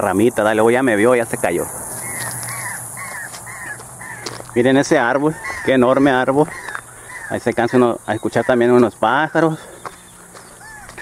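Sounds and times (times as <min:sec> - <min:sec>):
cicadas buzzing: 0:00.0 - 0:11.0
bird harsh cawing calls: 0:01.6 - 0:11.0.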